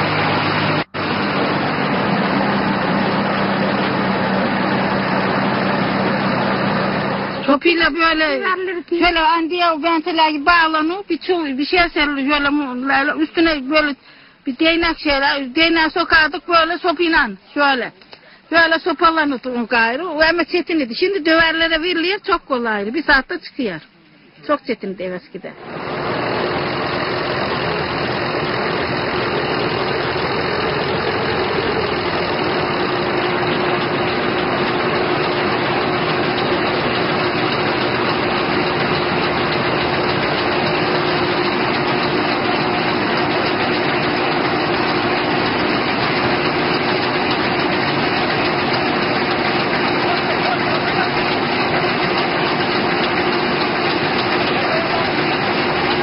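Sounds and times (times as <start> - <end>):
threshing machine running: 0.0 - 9.9, 25.6 - 56.0.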